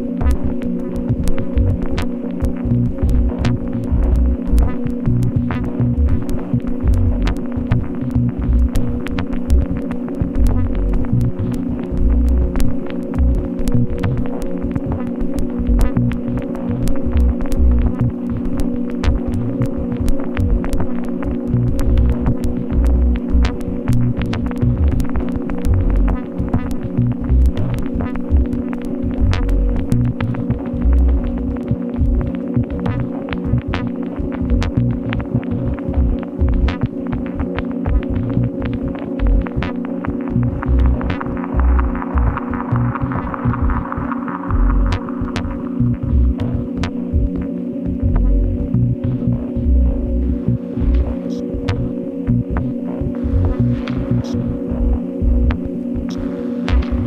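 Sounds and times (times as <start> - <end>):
low drone of held tones: 0.0 - 57.0
uneven pulsing bass: 1.1 - 36.9, 37.5 - 57.0.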